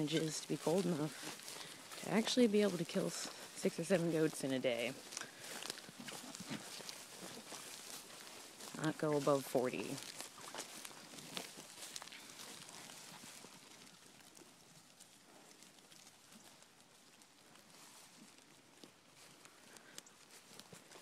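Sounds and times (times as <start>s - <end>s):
footsteps rustling through grass: 0.0s - 21.0s.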